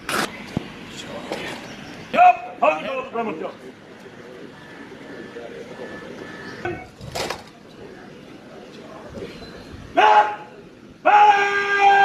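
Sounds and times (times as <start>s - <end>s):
person shouting a command: 2.1s - 3.2s, 10.0s - 12.0s.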